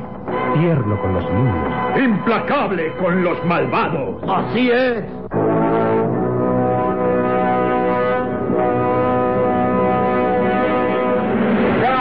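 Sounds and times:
brass fanfare chords: 5.3 - 12.0.

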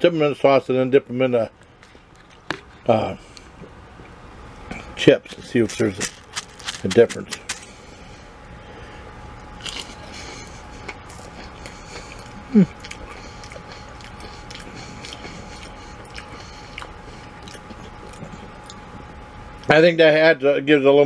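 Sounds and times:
small crunches: 1.6 - 3.6, 4.8 - 7.9, 9.4 - 18.8
person chewing crunchy food: 1.6 - 4.1, 4.7 - 8.0, 9.4 - 19.2
person humming: 12.4 - 12.9.

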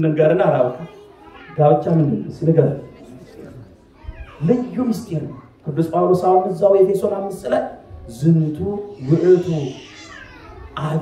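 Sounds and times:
man's voice through microphone: 0.0 - 0.9, 1.5 - 3.7, 4.4 - 11.0.

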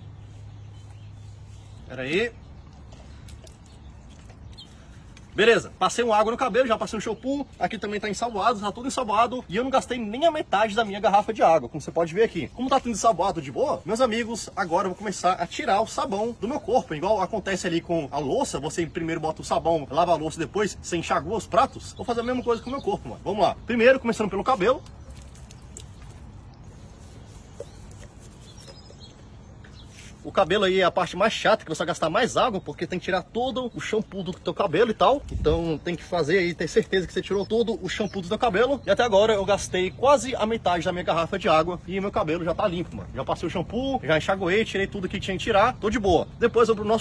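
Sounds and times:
drips splashing on pavement: 0.2 - 47.0
water trickling from bottle: 2.4 - 5.4, 22.4 - 30.3.

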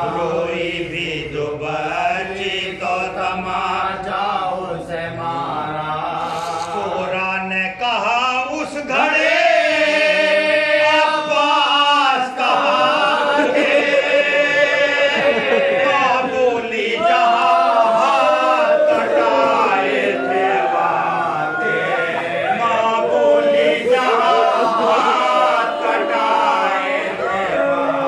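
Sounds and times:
men chanting unaccompanied: 0.0 - 28.0.

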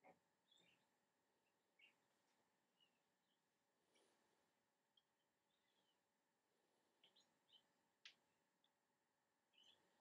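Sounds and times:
faint high chirps: 0.0 - 4.2, 4.8 - 6.3, 6.9 - 10.0.

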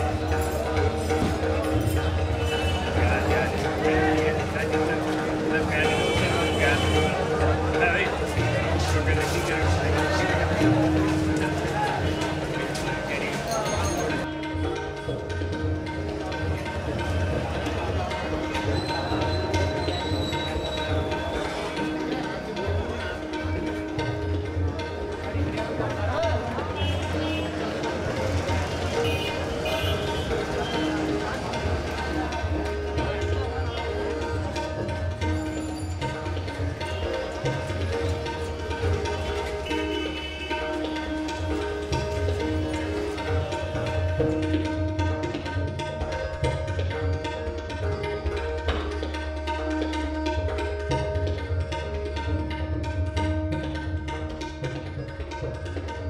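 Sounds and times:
tabla playing: 0.0 - 56.0.

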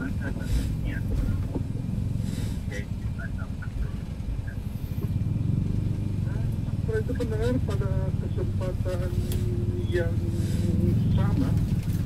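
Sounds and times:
faint radio speech: 0.0 - 1.7, 2.7 - 4.6
vehicle road and engine rumble: 0.0 - 12.0.

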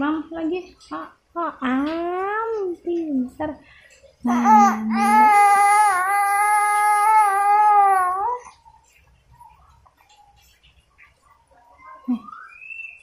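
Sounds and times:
baby squealing: 4.4 - 8.5.

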